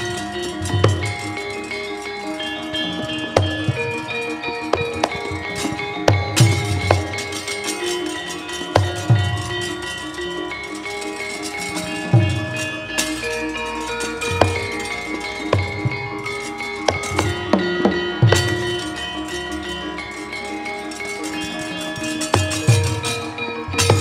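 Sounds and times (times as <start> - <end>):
drum strokes: 0.0 - 24.0
metallophones and gongs ringing: 0.0 - 24.0.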